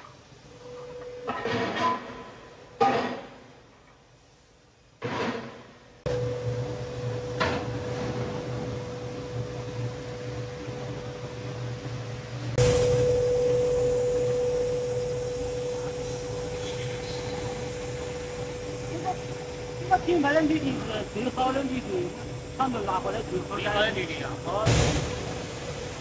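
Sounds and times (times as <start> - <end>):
foundry machinery hum: 0.0 - 26.0.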